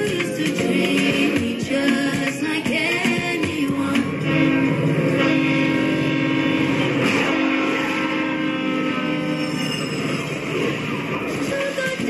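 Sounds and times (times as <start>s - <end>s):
train horn blast: 4.2s - 10.6s.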